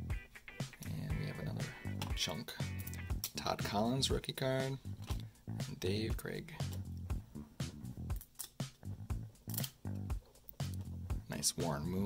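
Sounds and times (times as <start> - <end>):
background music: 0.0 - 12.0
trading cards clicking: 8.1 - 8.8, 9.5 - 10.9.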